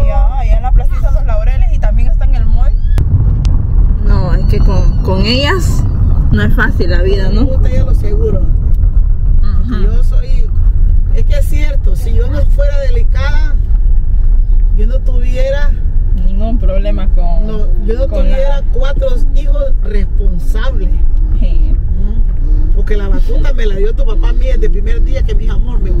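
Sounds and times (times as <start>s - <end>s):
car engine and road rumble: 0.0s - 26.0s
voices talking: 4.0s - 8.6s.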